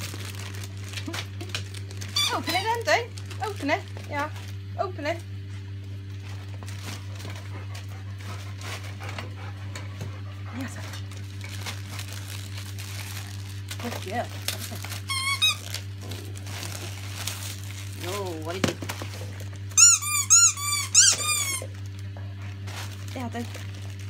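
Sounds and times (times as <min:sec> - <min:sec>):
wrapping paper rustling and tearing: 0:00.0 - 0:09.1, 0:10.6 - 0:24.0.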